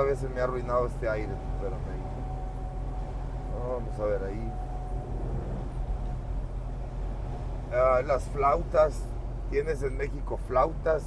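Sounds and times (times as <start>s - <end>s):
vehicle road and engine noise: 0.0s - 11.0s.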